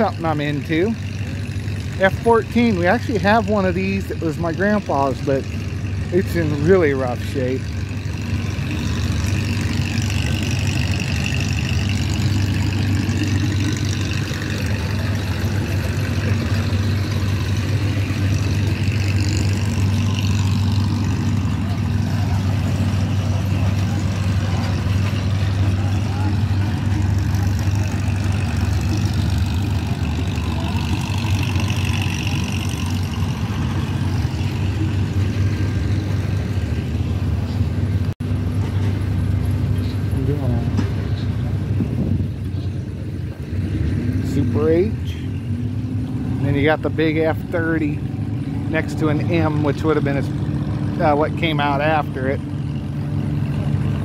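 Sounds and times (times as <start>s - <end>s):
low engine drone: 0.0s - 54.0s
faint voices: 13.5s - 33.1s.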